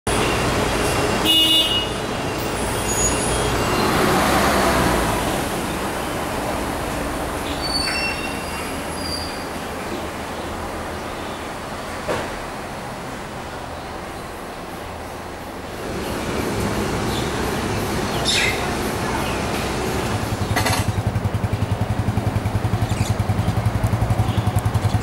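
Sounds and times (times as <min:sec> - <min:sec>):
bus diesel engine rumble: 0:00.1 - 0:25.0.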